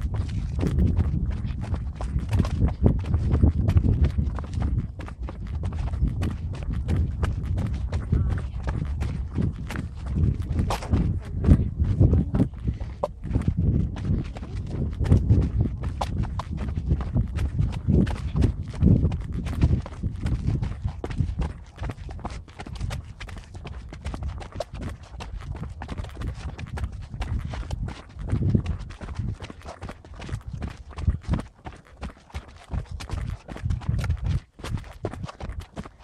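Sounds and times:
low camera rumble: 0:00.0 - 0:24.1
footsteps running down steps: 0:00.0 - 0:36.0.

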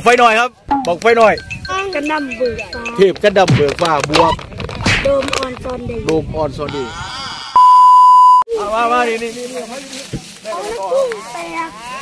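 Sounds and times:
person speaking: 0:00.7 - 0:03.6, 0:06.6 - 0:07.6
censor beep: 0:07.6 - 0:08.5.

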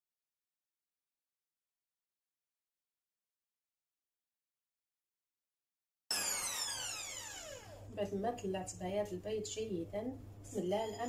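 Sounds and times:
electric hand mixer motor whine: 0:06.1 - 0:08.0.

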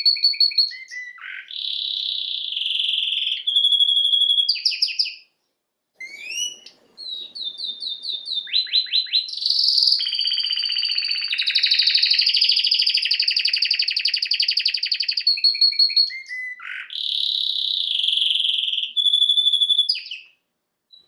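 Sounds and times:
canary singing fast trills: 0:00.0 - 0:05.3, 0:06.0 - 0:21.0.

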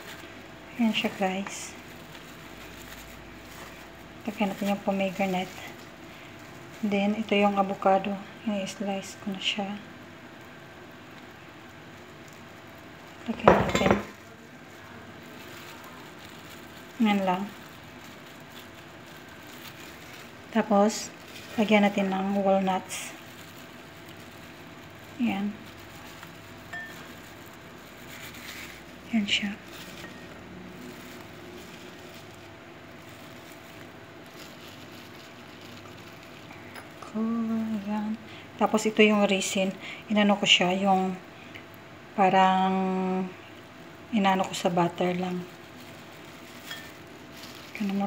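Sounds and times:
low background hum: 0:00.0 - 0:48.0
faint rustles: 0:14.1 - 0:38.6, 0:43.3 - 0:48.0.

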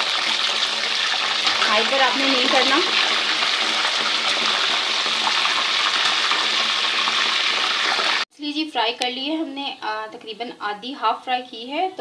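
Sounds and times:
fish frying in a pan: 0:00.0 - 0:08.2.

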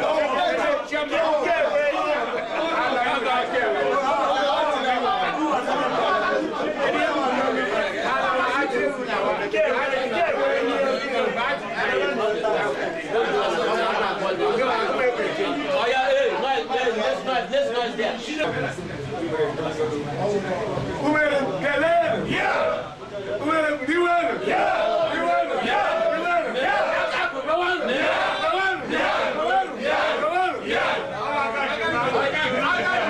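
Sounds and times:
crowd chatter: 0:00.0 - 0:33.0
men shouting: 0:21.6 - 0:33.0.

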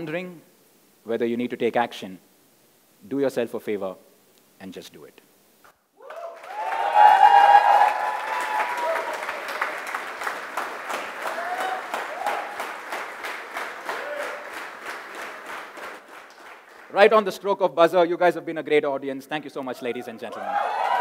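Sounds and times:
loud whoops: 0:06.0 - 0:09.8, 0:11.2 - 0:12.7, 0:13.8 - 0:14.5, 0:20.3 - 0:21.0
audience applauding and cheering: 0:06.0 - 0:17.0, 0:20.3 - 0:21.0.

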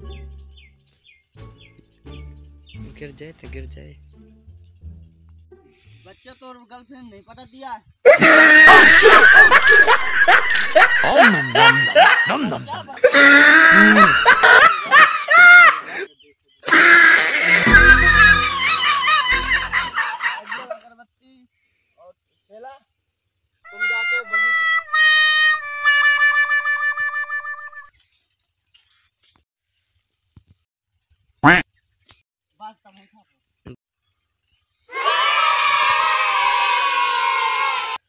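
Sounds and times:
young men laughing: 0:08.1 - 0:21.0.

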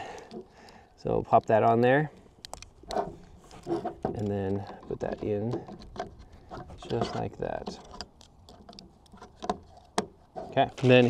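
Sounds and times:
plastic clicks and handling: 0:00.1 - 0:11.0.

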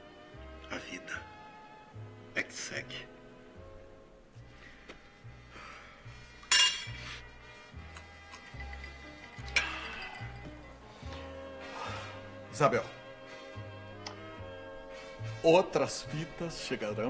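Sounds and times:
soft background music: 0:00.0 - 0:17.0
drinking glass clinking: 0:06.5 - 0:07.1, 0:07.8 - 0:10.8.

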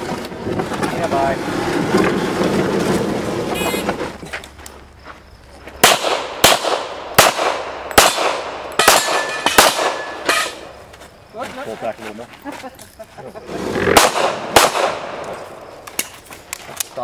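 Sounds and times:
handgun shots with echo: 0:05.8 - 0:10.5, 0:13.9 - 0:15.3.

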